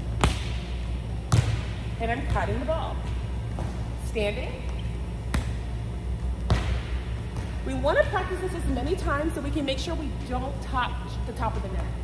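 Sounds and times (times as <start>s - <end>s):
steady low hum: 0.0s - 12.0s
volleyball hit by hand: 0.2s - 0.7s, 1.3s - 3.8s, 6.4s - 7.6s.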